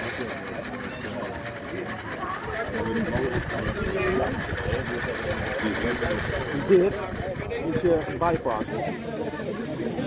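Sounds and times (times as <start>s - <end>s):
model steam locomotive wheels clattering: 0.0s - 9.3s.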